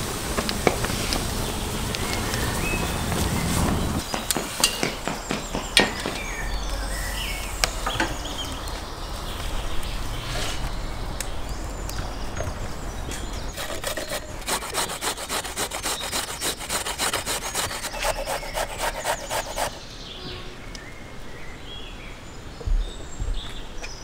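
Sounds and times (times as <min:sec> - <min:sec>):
carrot grated on metal grater: 0:13.6 - 0:19.8.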